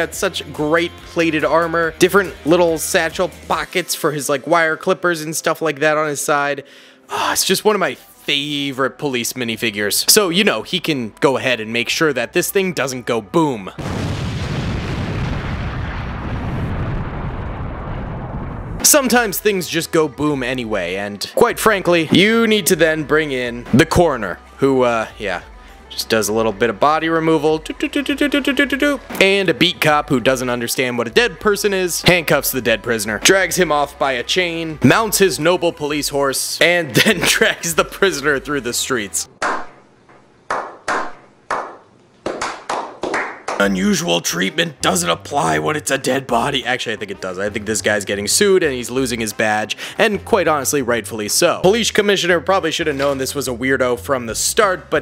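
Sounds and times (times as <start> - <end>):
explosion boom and rumble: 13.8 - 19.0
slow hand claps: 40.5 - 43.7.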